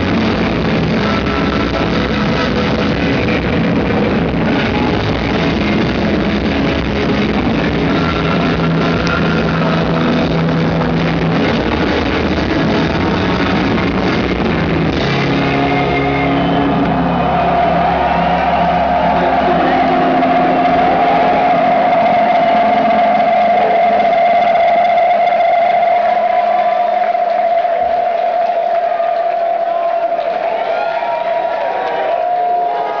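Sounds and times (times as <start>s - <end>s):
live rock band: 0.0s - 28.5s
bass guitar: 0.0s - 30.6s
crowd noise: 0.0s - 33.0s.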